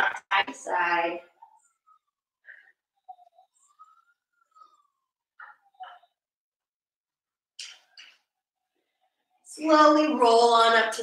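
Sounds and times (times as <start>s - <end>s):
dog whining: 1.4s - 6.3s.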